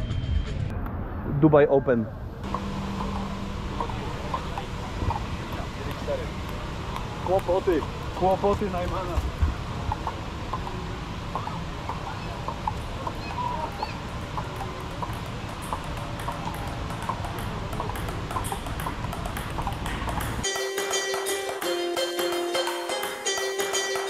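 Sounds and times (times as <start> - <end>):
table tennis ball clicking: 5.5 - 9.2, 13.7 - 24.0
music with steady beat: 20.2 - 24.0.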